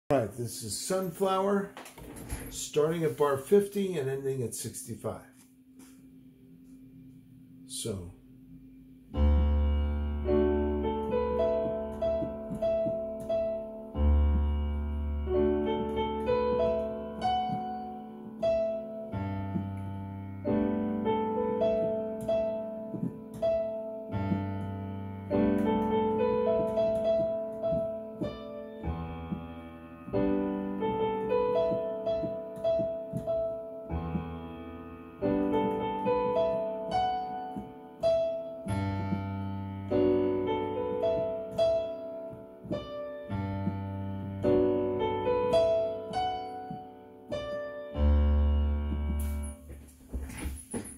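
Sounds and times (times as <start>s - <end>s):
electronic keyboard piano playing: 7.4s - 49.9s.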